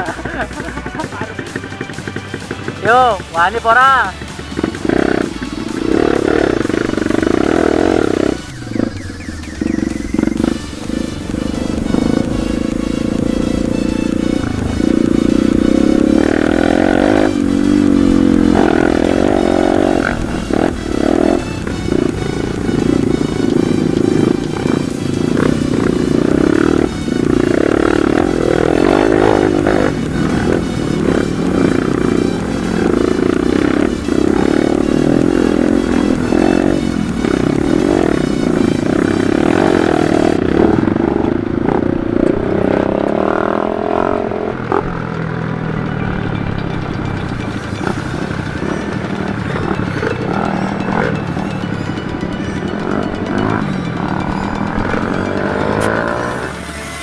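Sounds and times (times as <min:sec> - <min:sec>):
background music: 0:00.0 - 0:57.0.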